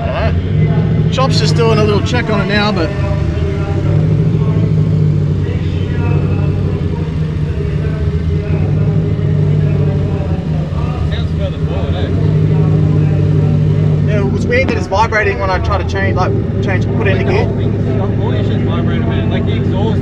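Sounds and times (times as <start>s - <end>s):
car engine idling: 0.0s - 20.0s
faint voices: 0.0s - 20.0s.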